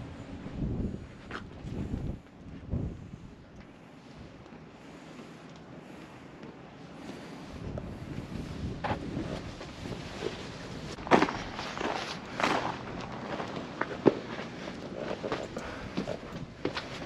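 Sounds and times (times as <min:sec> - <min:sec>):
footsteps on gravel and stone: 0:08.8 - 0:17.0.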